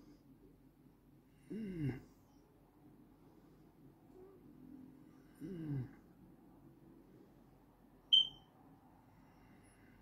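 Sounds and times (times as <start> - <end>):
faint low background noise: 0.0 - 10.0
short high-pitched electronic beep: 8.1 - 8.4.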